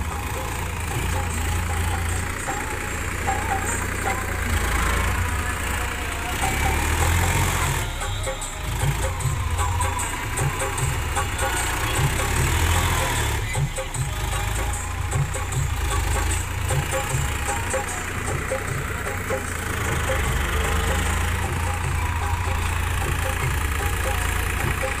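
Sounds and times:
tractor diesel engine idling: 0:00.0 - 0:25.0.

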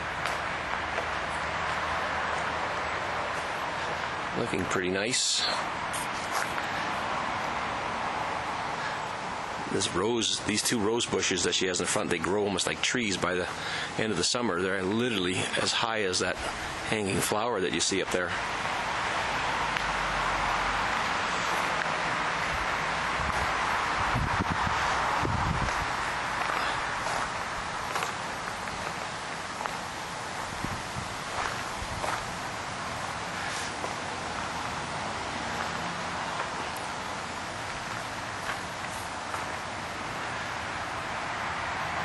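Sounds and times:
outdoor background hiss: 0:00.0 - 0:42.0.

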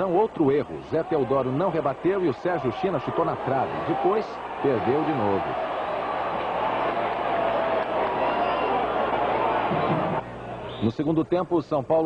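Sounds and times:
stadium crowd din: 0:00.0 - 0:11.2.

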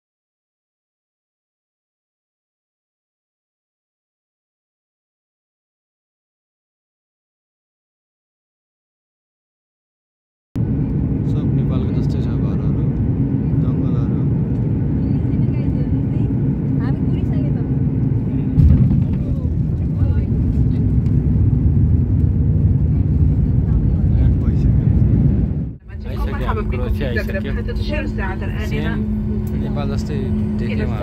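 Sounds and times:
airliner engine rumble: 0:10.6 - 0:31.0
steady hum: 0:10.6 - 0:31.0.

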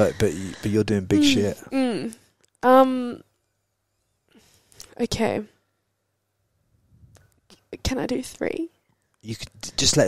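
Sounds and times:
woman speaking: 0:01.2 - 0:03.2, 0:04.9 - 0:05.5, 0:07.7 - 0:08.7
faint breath: 0:04.3 - 0:04.9.

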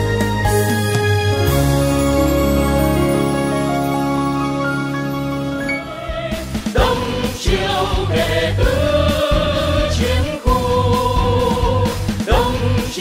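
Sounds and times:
choir singing long held notes: 0:05.6 - 0:13.0.

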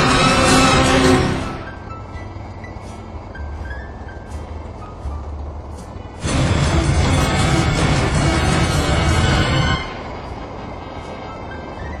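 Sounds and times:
car driving rumble: 0:00.0 - 0:12.0
faint music: 0:00.0 - 0:12.0.

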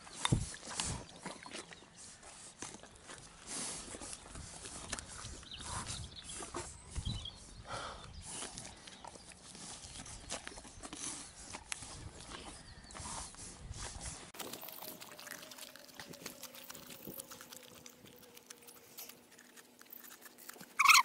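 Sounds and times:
ice crunching: 0:14.4 - 0:21.0
pony licking and biting ice: 0:14.4 - 0:21.0.

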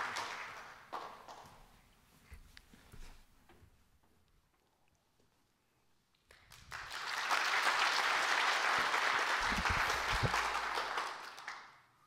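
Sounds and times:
audience applauding: 0:00.0 - 0:01.5, 0:06.3 - 0:11.9.

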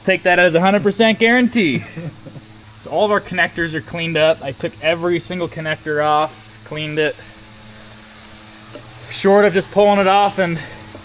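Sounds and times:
faint background hum: 0:00.0 - 0:11.0.

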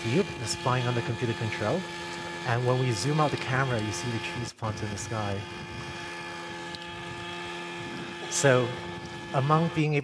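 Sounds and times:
model helicopter rotor drone: 0:00.0 - 0:10.0.

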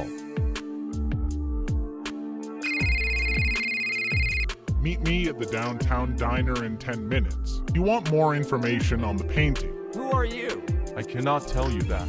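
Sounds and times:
electronic phone ringtone: 0:02.6 - 0:04.5
background music with bass drum: 0:04.5 - 0:12.0.

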